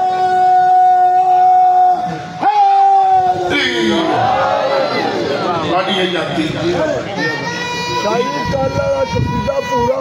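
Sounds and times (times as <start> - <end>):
man singing over loudspeakers: 0.0 - 4.2.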